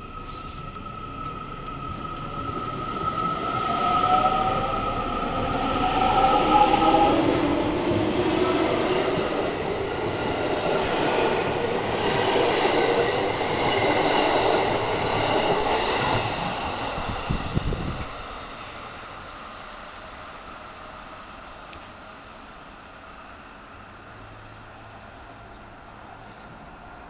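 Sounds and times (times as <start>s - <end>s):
wheels rumbling on rail: 0.0s - 27.0s.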